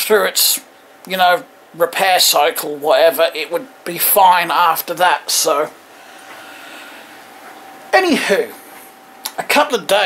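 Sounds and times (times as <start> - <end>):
man speaking: 0.0 - 5.8, 7.9 - 8.6, 9.3 - 10.0
steady hum: 0.0 - 10.0.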